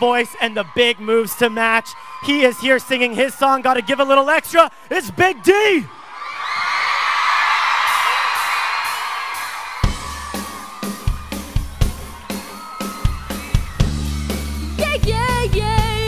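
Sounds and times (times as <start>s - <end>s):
audience cheering and whooping: 0.0s - 15.9s
pop song band intro: 7.9s - 16.0s.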